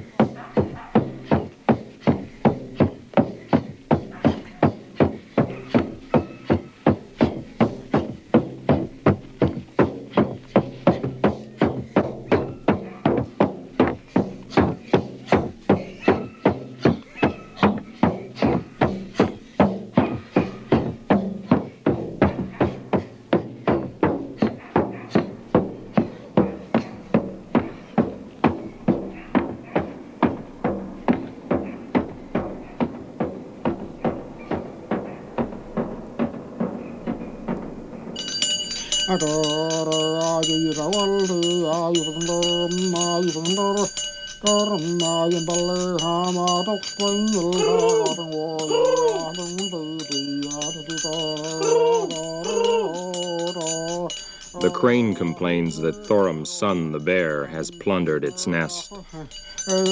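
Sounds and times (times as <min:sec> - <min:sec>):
frame drum dance rhythm: 0:00.0 - 0:59.9.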